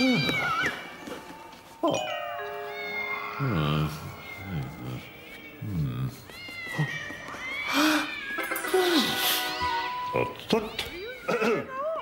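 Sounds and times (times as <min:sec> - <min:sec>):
background music: 0:00.7 - 0:06.1, 0:07.8 - 0:10.7
cartoon cats meowing and yowling: 0:02.5 - 0:05.0.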